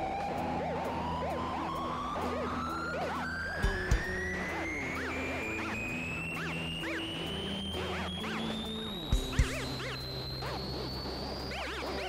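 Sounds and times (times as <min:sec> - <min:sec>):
siren-like rising tone: 0:00.0 - 0:12.0
live rock band music: 0:03.4 - 0:09.8.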